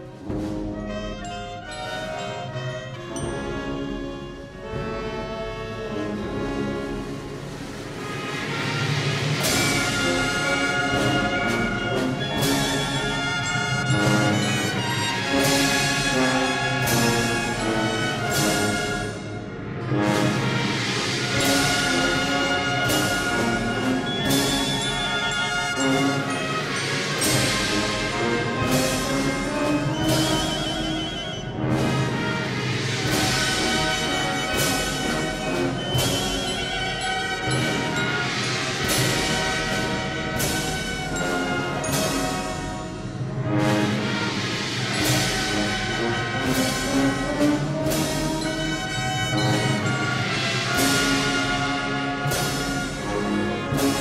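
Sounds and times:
brass band funeral march: 0.0 - 54.0
drum strokes: 0.0 - 54.0.

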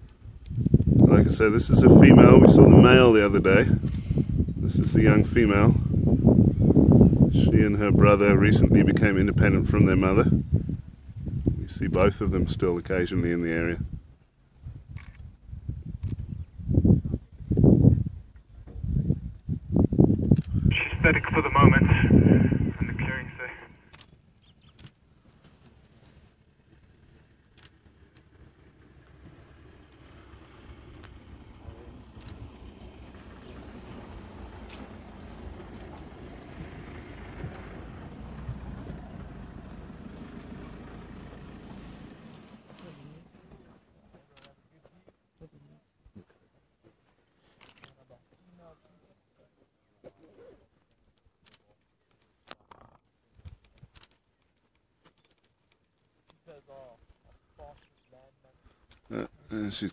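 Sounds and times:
faint low rumble: 18.2 - 24.1
faint clicks: 23.9 - 26.8.

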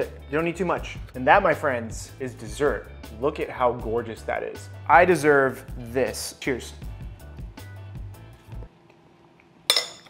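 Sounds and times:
background music: 0.0 - 8.7
spoon clinking on ceramic plate: 9.7 - 10.0.

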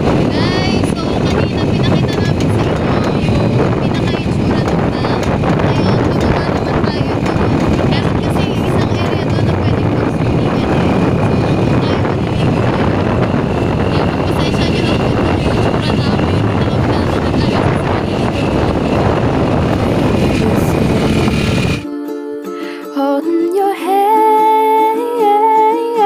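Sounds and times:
motorcycle riding noise: 0.0 - 21.8
wind buffeting microphone: 0.0 - 21.8.

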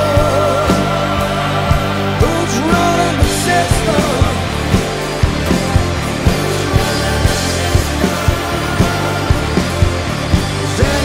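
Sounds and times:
drum kit steady beat: 0.0 - 11.0
rock band instrumental: 0.0 - 11.0.

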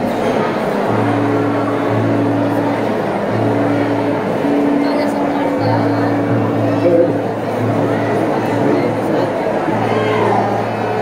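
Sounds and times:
harmonium low reedy notes: 0.0 - 11.0.

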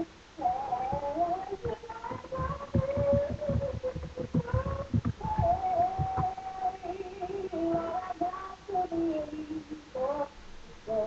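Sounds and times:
woman singing gospel: 0.0 - 11.0
short low thumps: 0.8 - 6.6.

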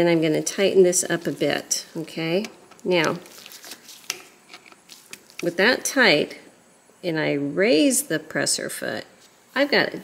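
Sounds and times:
screwdriver rubbing and clicking: 2.7 - 5.5.

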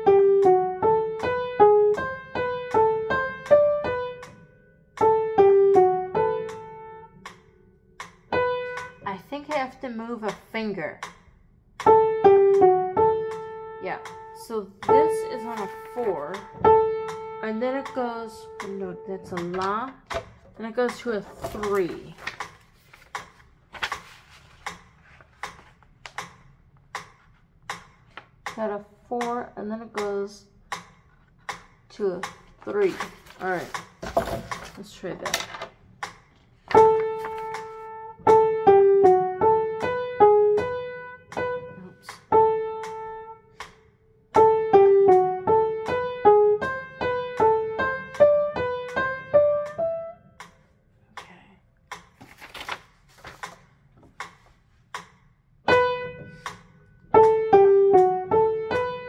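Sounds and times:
upright piano melody: 0.0 - 7.4, 8.0 - 9.9, 11.8 - 23.0, 36.7 - 50.5, 55.7 - 59.0
paper rustling: 21.1 - 26.2, 32.5 - 35.8, 36.5 - 37.9, 52.1 - 54.6.

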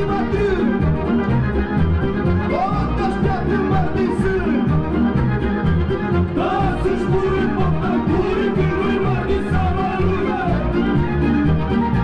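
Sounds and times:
folk dance music with fiddle: 0.0 - 12.0.

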